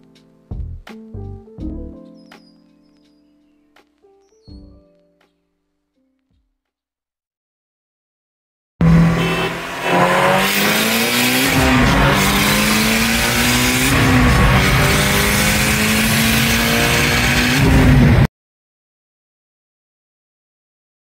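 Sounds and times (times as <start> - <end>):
car engine accelerating: 8.8 - 18.3
road noise: 8.8 - 18.3.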